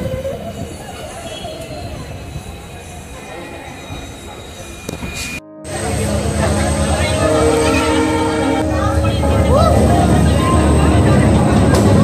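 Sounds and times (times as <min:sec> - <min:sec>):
high wheel squeal: 0:00.0 - 0:05.4, 0:06.0 - 0:08.6
train rumbling on rails: 0:00.0 - 0:12.0.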